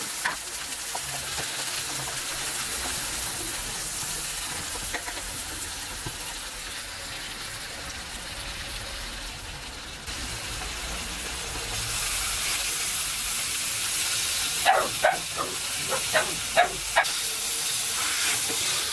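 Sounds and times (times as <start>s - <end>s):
squid sizzling in frying pan: 0.0s - 18.9s.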